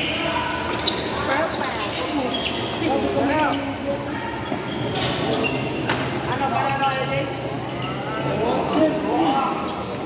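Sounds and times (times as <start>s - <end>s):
chatter of players: 0.0s - 10.0s
shoes squeaking on court: 0.0s - 10.0s.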